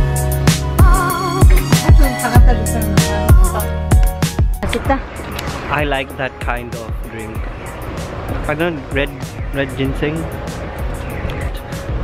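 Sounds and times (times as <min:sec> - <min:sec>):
background music: 0:00.0 - 0:12.0
road traffic: 0:00.0 - 0:12.0.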